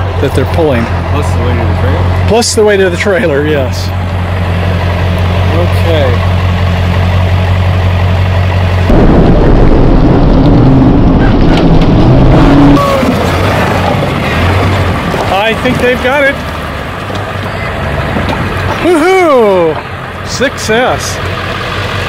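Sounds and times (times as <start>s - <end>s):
truck engine revving: 0.0s - 22.0s.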